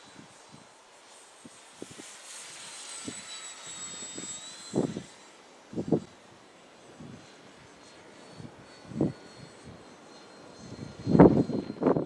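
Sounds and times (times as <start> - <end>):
electric motor and propeller whine: 0.0 - 12.0
wind buffeting microphone: 3.9 - 6.1, 8.4 - 9.8, 10.6 - 12.0.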